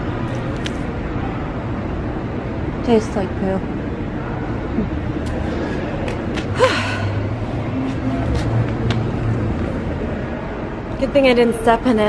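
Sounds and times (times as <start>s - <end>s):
low background hum: 0.0s - 12.0s
woman gasping: 6.6s - 7.3s.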